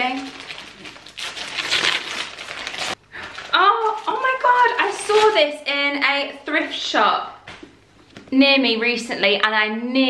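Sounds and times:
wrapping paper tearing and crinkling: 0.0 - 5.6.

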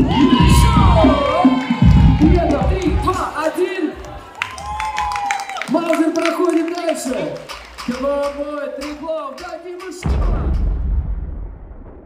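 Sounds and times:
deep cinematic boom: 10.0 - 12.0.

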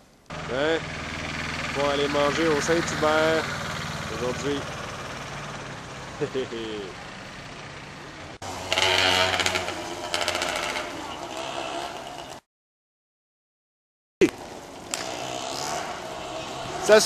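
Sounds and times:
voices: 0.3 - 0.9, 1.6 - 4.9, 6.1 - 7.2, 16.1 - 17.0
low engine hum: 0.3 - 8.6.

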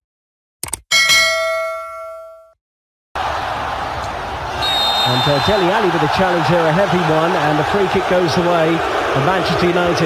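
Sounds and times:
bell chime: 0.9 - 2.6.

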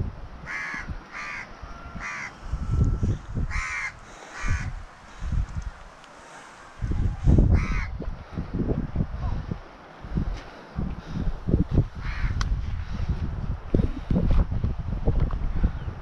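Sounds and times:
wind rumbling on microphone: 0.0 - 16.0
crow cawing: 0.4 - 4.8, 7.5 - 7.9, 12.0 - 12.4.

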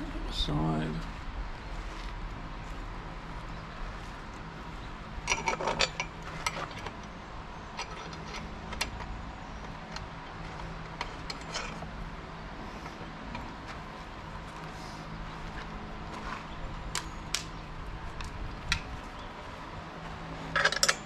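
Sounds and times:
wrench clinking on metal: 20.5 - 21.0.

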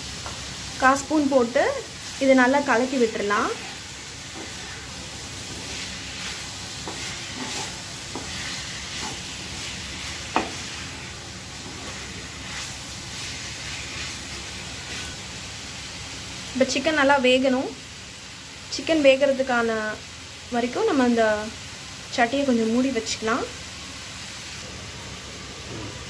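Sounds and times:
chicken sizzling in pan: 0.0 - 26.0
wooden spatula scraping pan: 3.3 - 11.0, 11.6 - 15.2.

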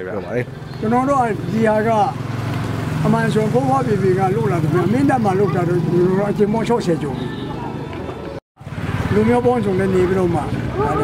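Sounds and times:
man talking: 3.0 - 7.2.

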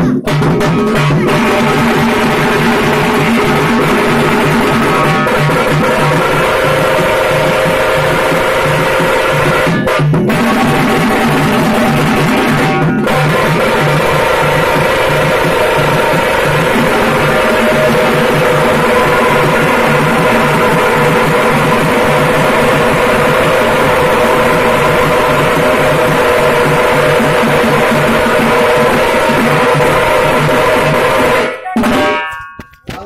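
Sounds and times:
frame drums beaten fast: 0.0 - 33.0
steady held tone: 1.1 - 33.0.

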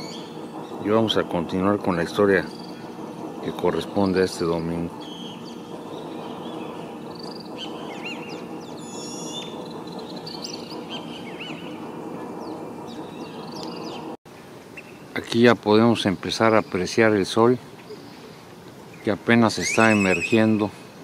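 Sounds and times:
fast high bird trill: 0.0 - 14.2
birds chirping and calling: 0.0 - 15.1, 16.0 - 20.7
steady low hum: 0.0 - 21.0.

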